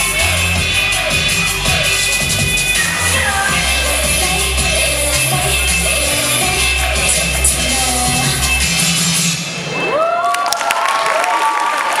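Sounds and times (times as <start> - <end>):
audience applauding and cheering: 9.6 - 12.0.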